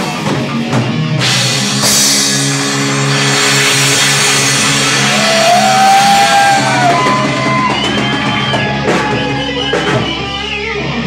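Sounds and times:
distorted electric guitar and bass: 0:00.0 - 0:11.0
high guitar note bending: 0:01.2 - 0:10.6.

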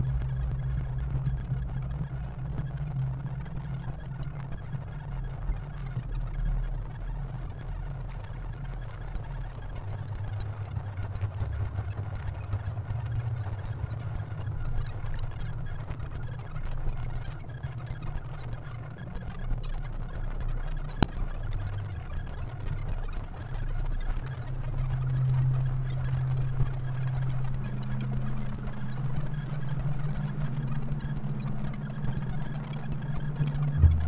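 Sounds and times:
glitch electronic music: 0:25.5 - 0:34.0.

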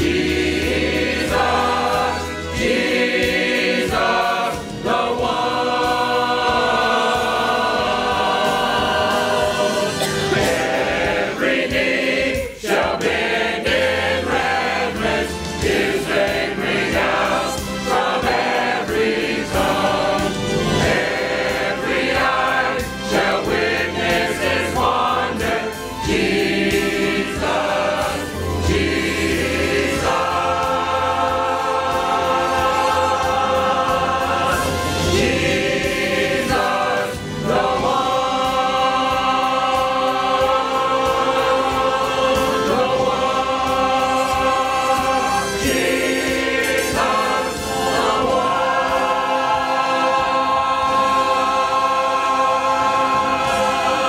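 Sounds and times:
choir singing a hymn: 0:00.0 - 0:54.0.

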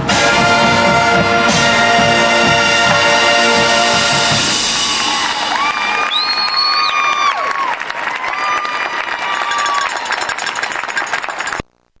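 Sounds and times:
crowd applauding: 0:04.5 - 0:11.6.

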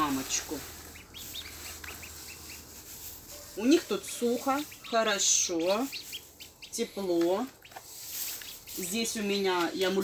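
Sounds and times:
ducklings peeping: 0:00.0 - 0:02.8, 0:03.7 - 0:10.0.

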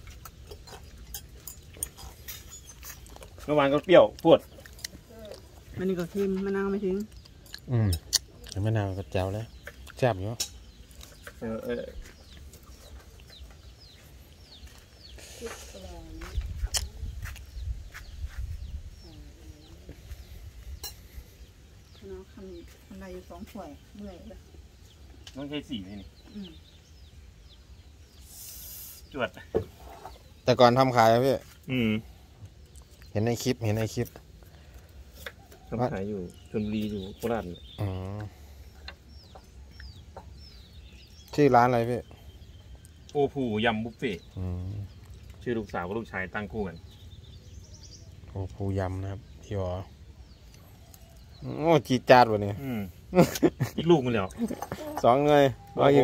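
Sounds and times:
chickens chirping: 0:00.0 - 0:56.0.

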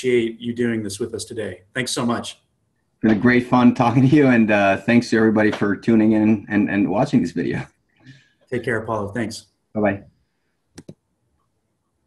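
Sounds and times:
sharp clicks: 0:10.8 - 0:11.0.

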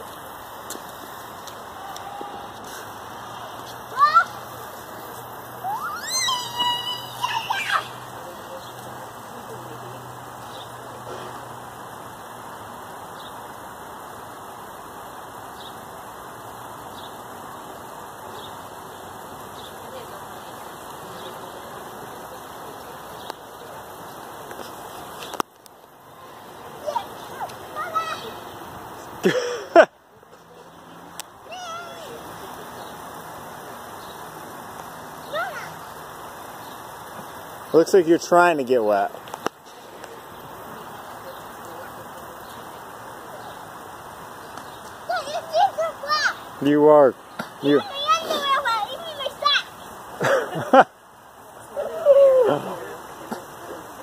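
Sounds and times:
sprinkler spraying water: 0:00.0 - 0:54.0
girl calling out: 0:03.4 - 0:04.4
girl squealing: 0:03.9 - 0:04.4, 0:05.6 - 0:08.0
sprinkler click: 0:22.3 - 0:26.0, 0:31.1 - 0:31.4, 0:38.5 - 0:45.1.

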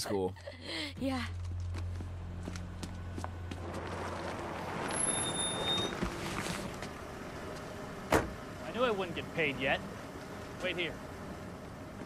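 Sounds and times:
traffic-like wash: 0:02.6 - 0:12.0.

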